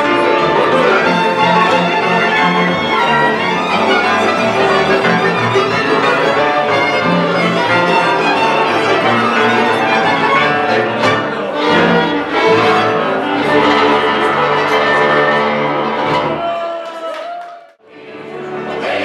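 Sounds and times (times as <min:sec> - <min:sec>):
double bass and cello: 0:00.0 - 0:16.6
flute and clarinet: 0:00.0 - 0:16.6
violins: 0:00.0 - 0:16.8, 0:17.9 - 0:19.0.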